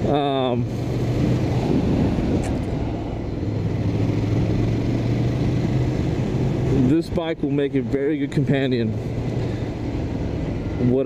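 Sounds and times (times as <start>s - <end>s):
motorcycle engine cruising: 0.0s - 10.8s
wind and road noise: 0.0s - 11.0s.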